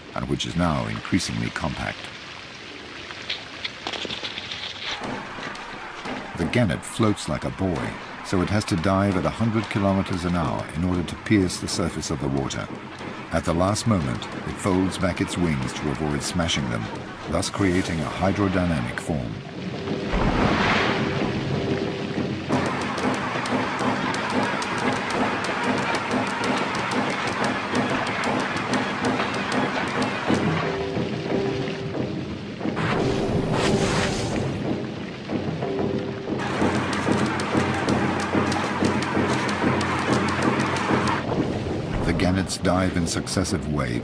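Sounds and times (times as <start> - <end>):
splashes into water: 0.6 - 31.9
music with sustained notes: 4.8 - 42.2
rushing sweeps: 11.9 - 44.0.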